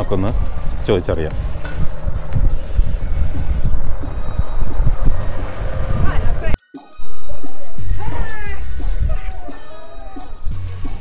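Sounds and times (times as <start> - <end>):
vehicle driving past: 0.4 - 6.6.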